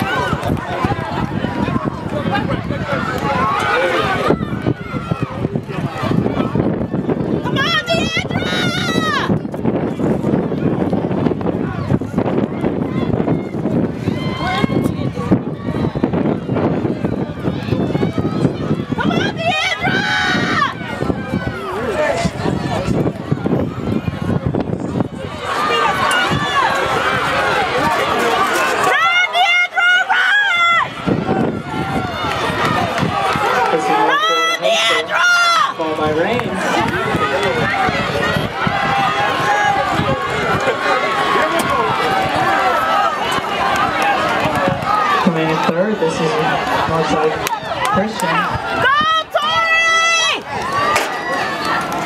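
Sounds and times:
chatter of spectators: 0:00.0 - 0:52.0
crowd shouting and cheering: 0:00.0 - 0:52.0
loud high yell: 0:07.5 - 0:09.3, 0:17.8 - 0:20.9, 0:28.8 - 0:35.8, 0:47.6 - 0:51.7.

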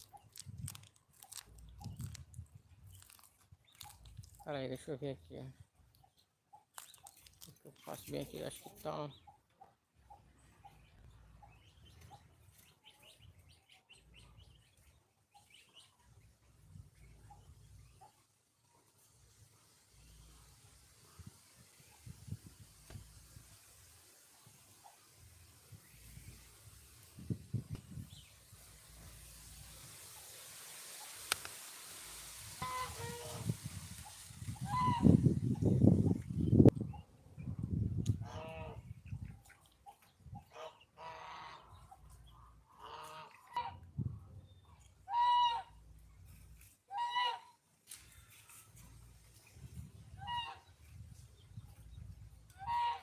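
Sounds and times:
poultry calling: 0:32.6 - 0:33.5, 0:34.6 - 0:35.2, 0:38.2 - 0:38.9, 0:39.9 - 0:43.8, 0:45.1 - 0:45.8, 0:46.9 - 0:47.6, 0:50.1 - 0:50.8, 0:52.5 - 0:53.0.

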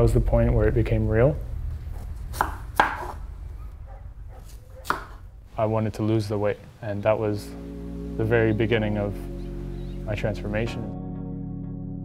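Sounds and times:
knife chopping on wooden board: 0:02.3 - 0:03.2, 0:04.5 - 0:05.2.

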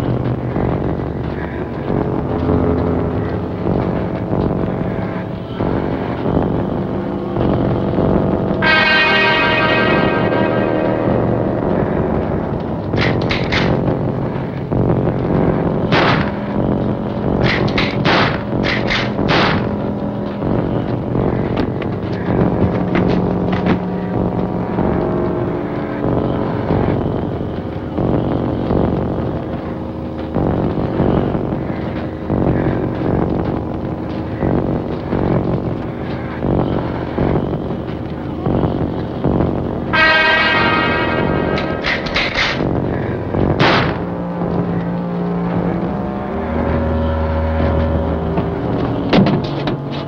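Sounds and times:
dramatic orchestral music: 0:08.6 - 0:13.4, 0:39.9 - 0:42.6
sharp musical hits: 0:08.6 - 0:14.1.

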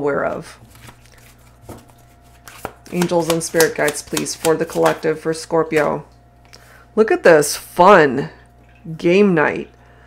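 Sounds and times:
cards being shuffled: 0:00.6 - 0:05.1.

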